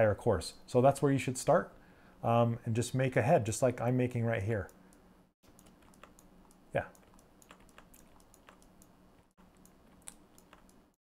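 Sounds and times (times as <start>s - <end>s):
keyboard typing: 5.4s - 11.0s.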